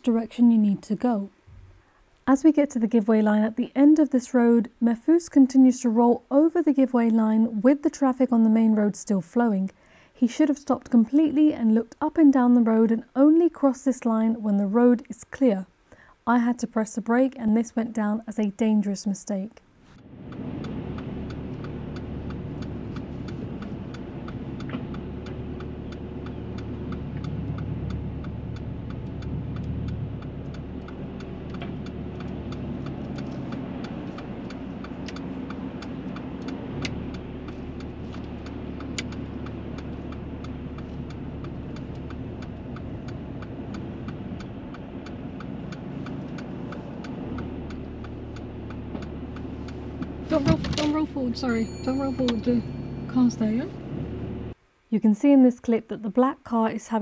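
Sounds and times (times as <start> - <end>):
car engine running: 19.8 - 54.6
turn indicator ticking: 19.9 - 54.5.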